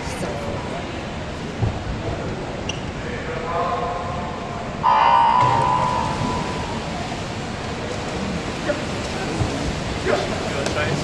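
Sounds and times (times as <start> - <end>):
echoing hall noise: 0.0 - 11.0.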